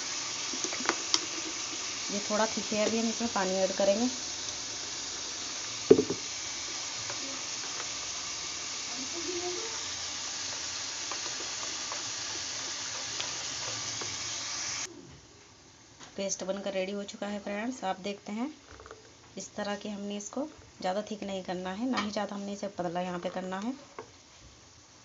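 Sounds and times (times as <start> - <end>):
food sizzling in a pan: 0.0 - 14.9, 16.2 - 25.0
sharp knock: 5.9 - 6.2.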